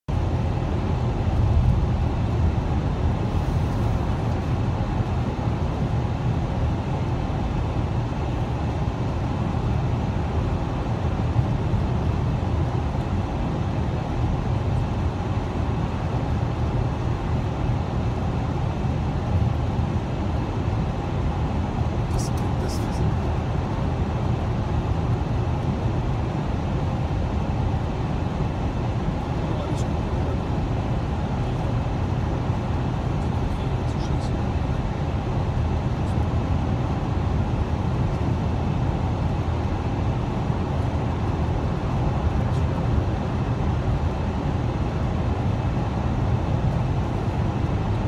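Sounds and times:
car road noise rumble: 0.1s - 48.0s.

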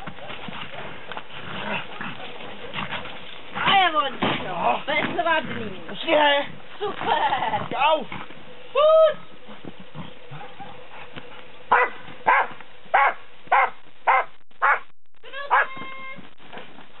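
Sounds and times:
dog barking sharply: 11.7s - 14.9s.

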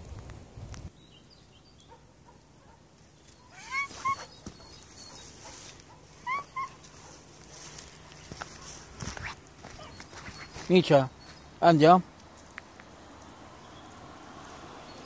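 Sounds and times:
cat chirping meows: 3.4s - 4.7s, 6.2s - 6.8s.

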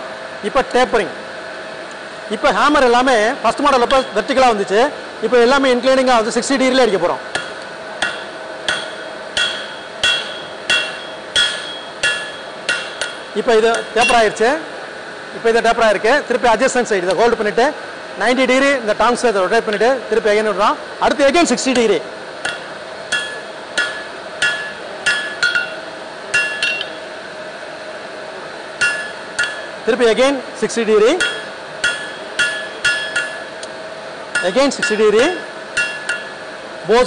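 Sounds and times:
hammer striking steel on anvil: 3.8s - 4.3s, 7.3s - 14.5s, 21.7s - 27.1s, 28.8s - 29.8s, 31.0s - 33.7s, 34.3s - 36.6s.

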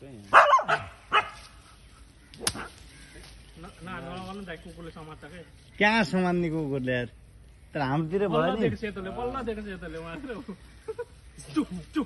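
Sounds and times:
dog barking: 0.3s - 1.4s.

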